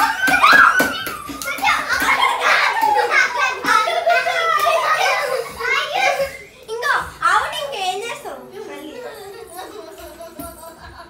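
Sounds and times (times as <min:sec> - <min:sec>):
children talking and calling out: 0:00.0 - 0:10.7.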